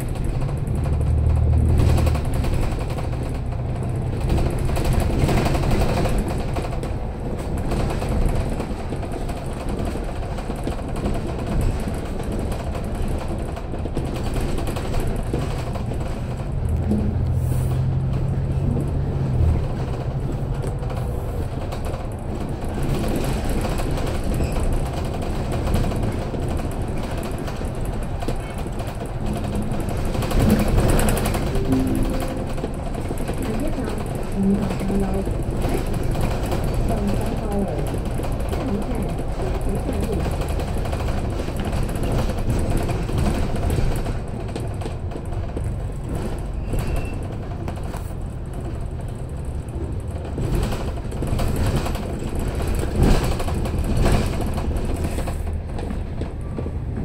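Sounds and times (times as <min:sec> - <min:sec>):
bus engine and tyres rumble: 0:00.0 - 0:57.0.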